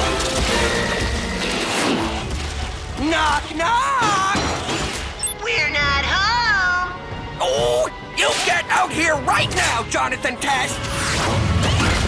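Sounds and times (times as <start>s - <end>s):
film score music: 0.0s - 12.0s.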